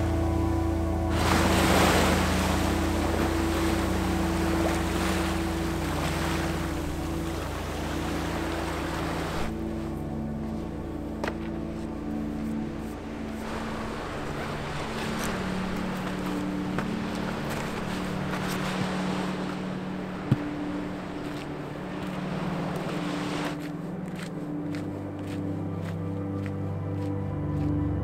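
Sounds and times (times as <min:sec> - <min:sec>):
sustained low background music: 0:00.0 - 0:28.0.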